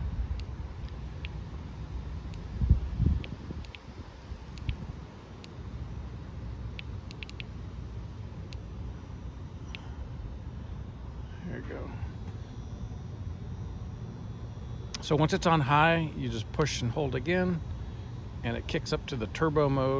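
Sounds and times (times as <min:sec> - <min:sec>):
low outdoor rumble: 0:00.0 - 0:19.9.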